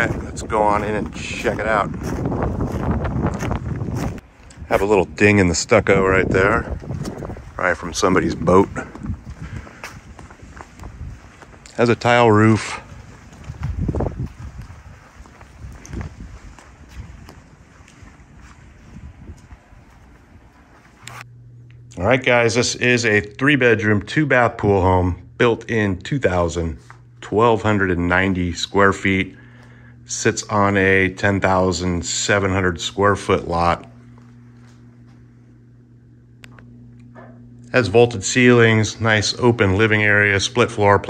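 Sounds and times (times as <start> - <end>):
wind buffeting microphone: 0.0 - 20.7
footsteps on gravel: 0.0 - 21.3, 33.4 - 35.4
steady low hum: 0.0 - 41.0.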